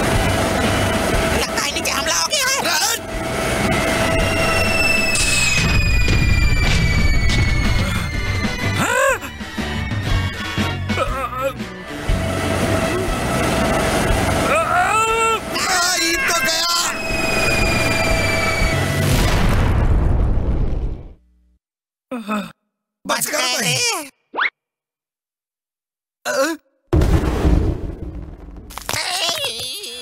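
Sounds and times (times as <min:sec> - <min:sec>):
loud burst of sound: 0:00.0 - 0:08.6, 0:11.9 - 0:21.2, 0:27.0 - 0:28.9
cartoon music: 0:07.4 - 0:18.9
character groaning: 0:10.9 - 0:11.6, 0:22.1 - 0:22.6, 0:26.2 - 0:26.6.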